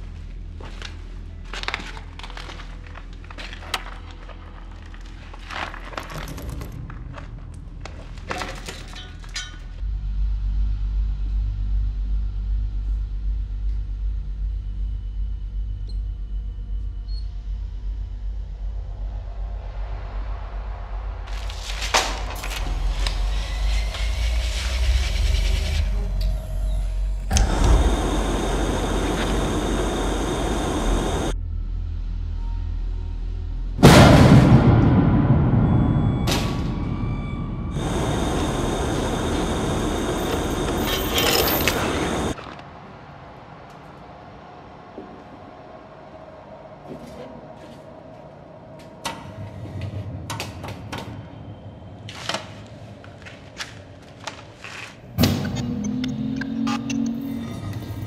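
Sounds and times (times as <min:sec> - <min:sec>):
low rumbling drone: 0:09.8 - 0:42.4
loud hiss: 0:27.3 - 0:31.4, 0:37.7 - 0:42.4
loud sudden hit: 0:33.8 - 0:39.2.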